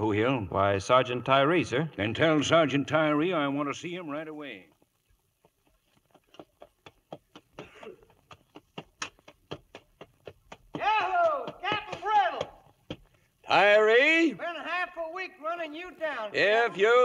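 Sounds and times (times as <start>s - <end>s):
horse hoofbeats: 2.2s - 13.8s
man calling out loudly: 10.8s - 12.6s.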